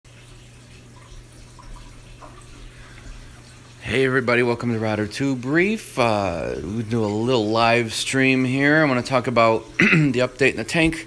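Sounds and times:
low pump hum: 0.1 - 11.0
trickling water: 0.1 - 11.0.

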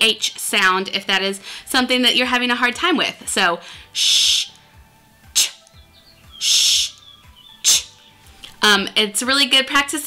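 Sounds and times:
woman saying speech sounds: 8.6 - 10.0.

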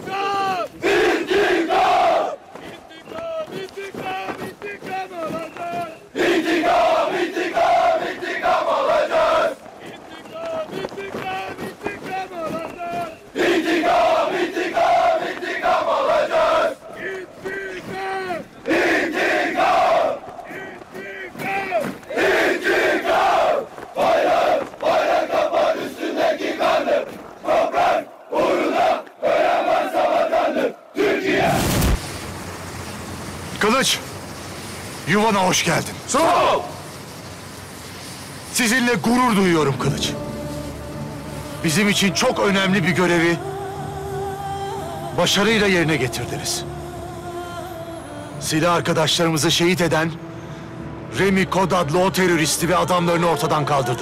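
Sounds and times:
men chanting in unison: 0.0 - 31.6, 39.6 - 46.9.

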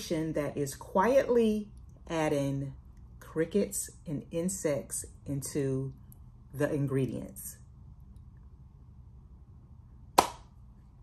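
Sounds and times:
faint low room hum: 0.0 - 11.0
hand clap: 10.2 - 10.5.

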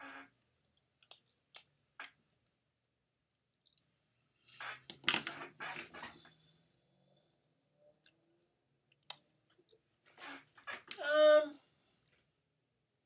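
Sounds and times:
lips smacking clicks: 8.9 - 9.8.

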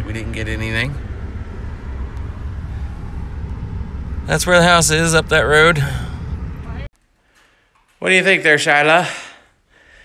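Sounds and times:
road noise inside cabin: 0.0 - 6.9
vehicle engine rumble: 0.0 - 6.9.

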